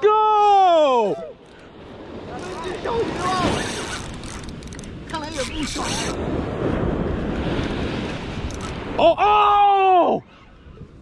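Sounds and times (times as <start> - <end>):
faint shouts: 0.0 - 1.4
man shouting excitedly: 0.0 - 1.4, 9.0 - 10.2
surf: 0.0 - 11.0
wind noise: 1.1 - 11.0.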